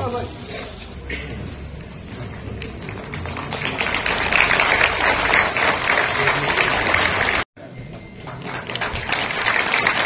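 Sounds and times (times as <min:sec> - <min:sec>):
audience applauding: 0:02.5 - 0:07.5, 0:08.2 - 0:10.0.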